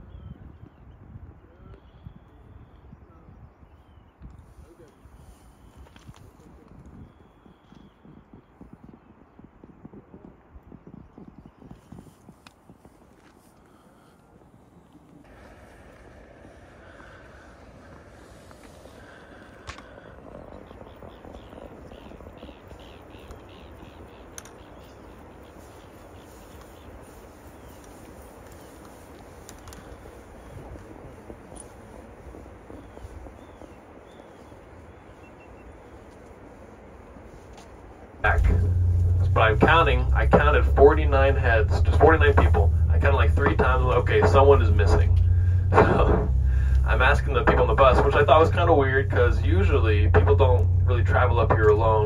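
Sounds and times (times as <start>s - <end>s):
faint bird chirps: 0.0s - 9.4s, 15.3s - 28.8s, 29.6s - 36.2s
steady rushing noise: 15.0s - 52.0s.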